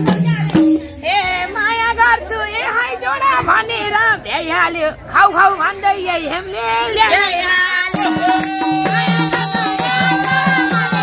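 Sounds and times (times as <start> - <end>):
woman singing in high voice: 0.0 - 4.9, 5.5 - 11.0.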